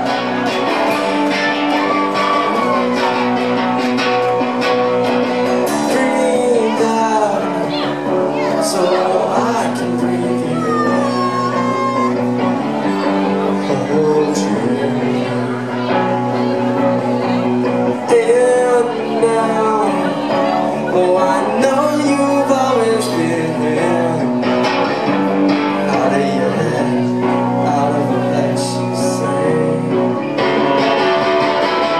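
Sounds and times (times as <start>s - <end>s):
bass: 0.0s - 31.9s
drums: 0.0s - 31.9s
electric guitars playing chords: 0.0s - 31.9s.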